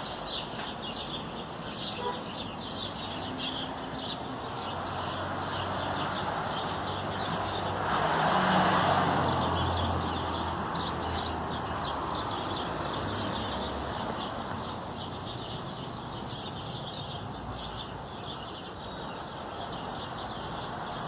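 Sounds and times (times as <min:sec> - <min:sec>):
small birds chirping: 0:00.0 - 0:21.0
car passing: 0:03.2 - 0:15.6.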